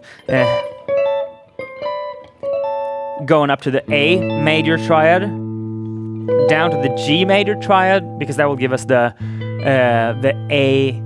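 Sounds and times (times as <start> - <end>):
electric guitar picked chords: 0.0 - 11.0.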